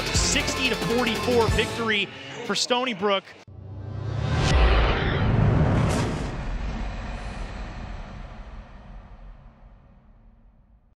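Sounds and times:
deep rumbling whoosh: 3.5s - 10.8s.

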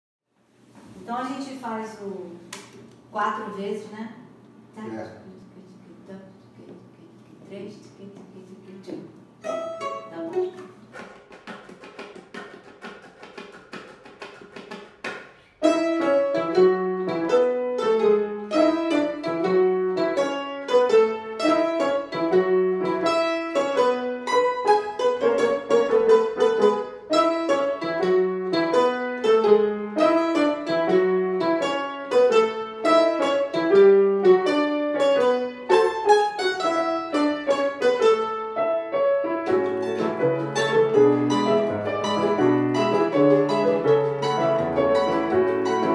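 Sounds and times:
piano and mandolin duo: 8.4s - 45.9s.

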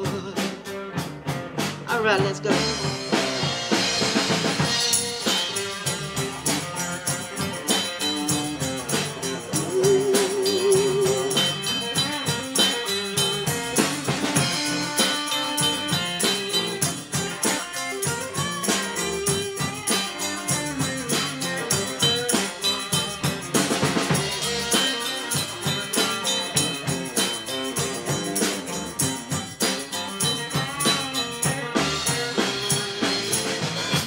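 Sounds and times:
bass guitar: 0.0s - 34.0s
drum kit beat: 0.0s - 34.0s
electric guitar lead line: 0.0s - 34.0s.

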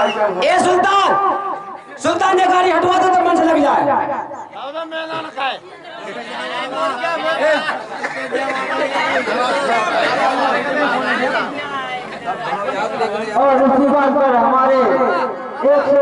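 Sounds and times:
overlapping voices chattering: 0.0s - 16.0s.

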